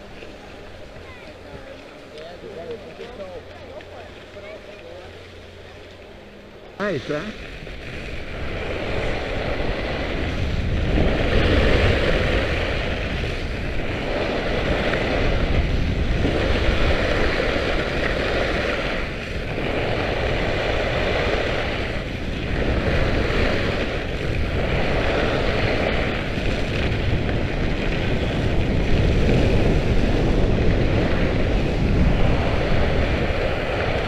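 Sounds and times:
skis carving on snow: 0.0 - 34.0
wind rushing over microphone: 0.0 - 34.0.

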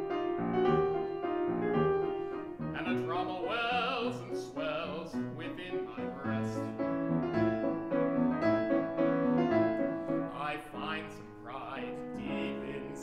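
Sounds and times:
piano playing repeated chords: 0.0 - 13.0.

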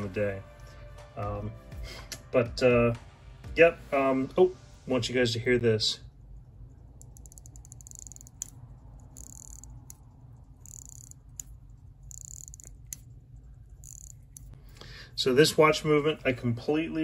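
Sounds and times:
watch winding ratchet clicks: 6.2 - 14.6.

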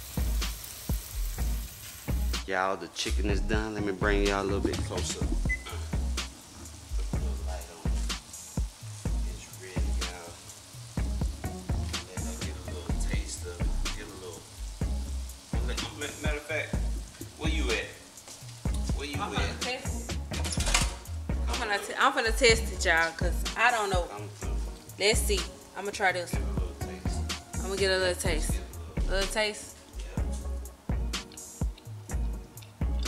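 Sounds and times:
chicken sizzling in oil: 0.0 - 2.5, 4.3 - 27.8.

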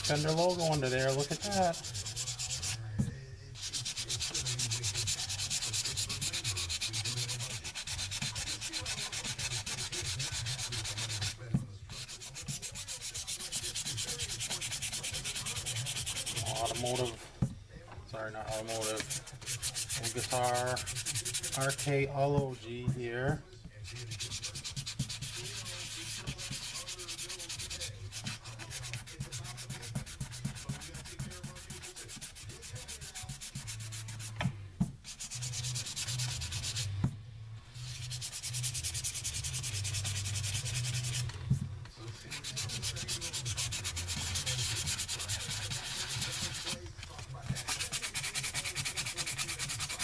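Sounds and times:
sandpaper rubbing on wood: 0.0 - 2.9, 3.5 - 17.2, 18.4 - 22.6, 23.9 - 34.4, 35.0 - 37.0, 37.7 - 41.5, 42.1 - 50.0.

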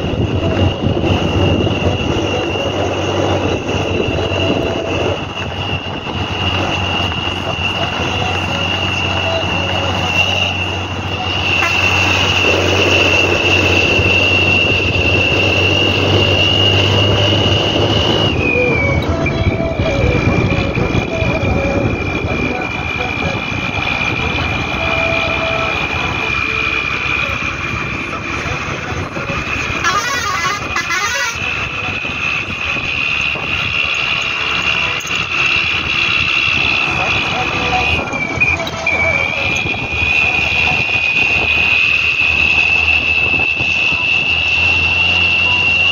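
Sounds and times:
bus engine whine: 0.0 - 45.9
bus horn: 0.0 - 45.9.

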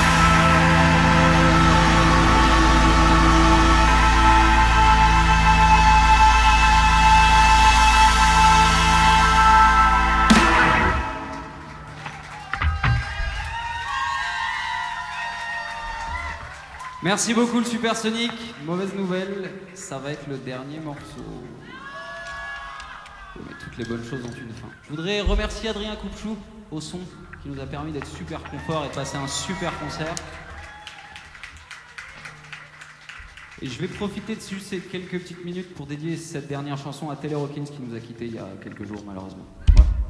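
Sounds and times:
audience noise: 0.0 - 35.8
drum hits: 10.1 - 13.8.

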